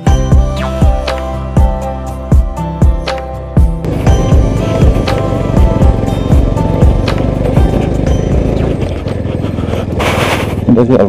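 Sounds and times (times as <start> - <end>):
music with steady beat: 0.0 - 8.6.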